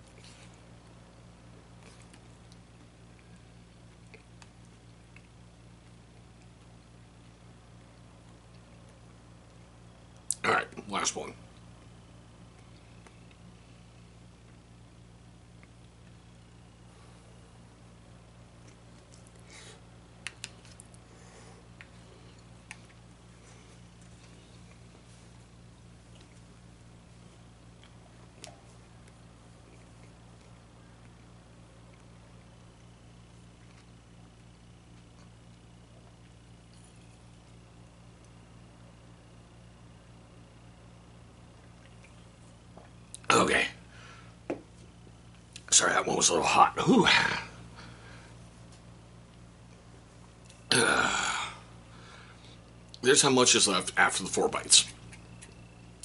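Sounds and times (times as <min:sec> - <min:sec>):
person chewing food: 0:00.0 - 0:09.7, 0:18.5 - 0:37.6
low electrical hum: 0:00.0 - 0:56.0.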